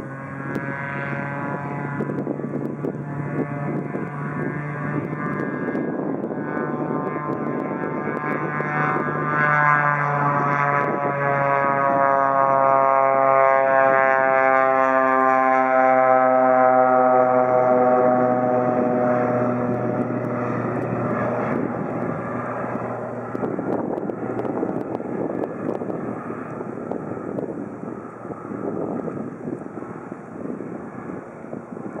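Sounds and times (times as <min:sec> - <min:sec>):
propeller plane engine drone: 0:00.0 - 0:32.0.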